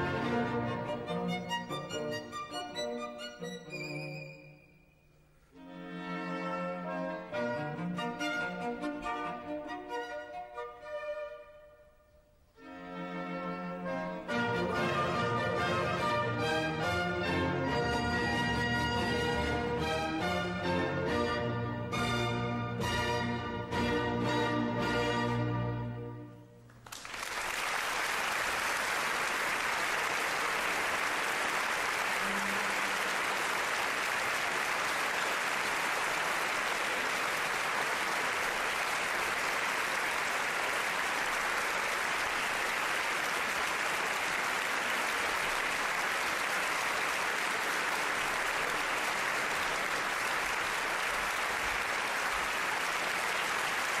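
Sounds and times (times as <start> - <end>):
audience applauding: 26.7 - 54.0.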